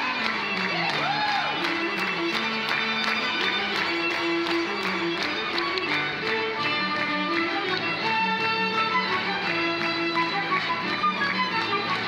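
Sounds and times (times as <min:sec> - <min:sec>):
hand claps: 0:00.0 - 0:12.0
string ensemble playing dance tune: 0:00.0 - 0:12.0.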